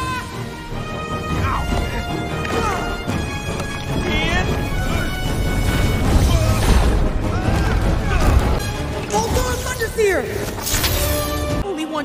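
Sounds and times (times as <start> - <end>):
film score music: 0.0 - 12.0.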